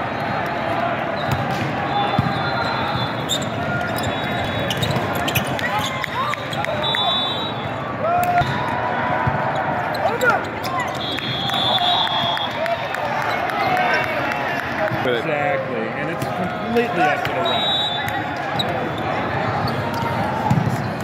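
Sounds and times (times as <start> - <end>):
voices chattering and calling: 0.3 - 7.9, 9.4 - 21.0
sneakers squeaking on floor: 1.2 - 7.3, 9.5 - 11.4
volleyballs struck and bouncing: 8.2 - 9.5.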